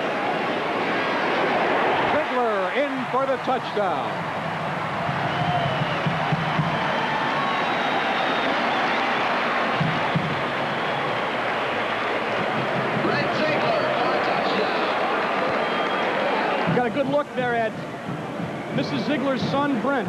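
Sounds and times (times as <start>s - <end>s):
stadium crowd cheering: 0.0s - 20.0s.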